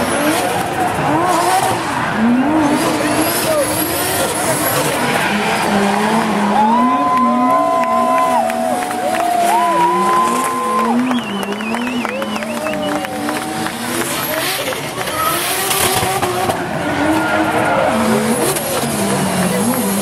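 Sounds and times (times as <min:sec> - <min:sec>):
car engines revving: 0:00.0 - 0:20.0
tyres squealing on asphalt: 0:00.0 - 0:20.0.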